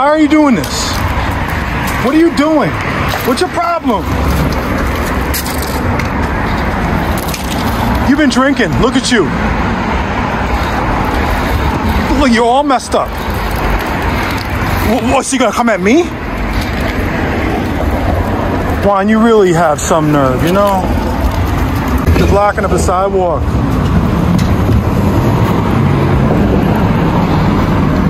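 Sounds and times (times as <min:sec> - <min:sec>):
man speaking: 0:00.0 - 0:01.1, 0:02.0 - 0:04.2, 0:08.0 - 0:09.4, 0:12.0 - 0:13.2, 0:14.8 - 0:16.2, 0:18.8 - 0:21.0, 0:22.1 - 0:23.5
passing cars rumble: 0:00.0 - 0:28.0.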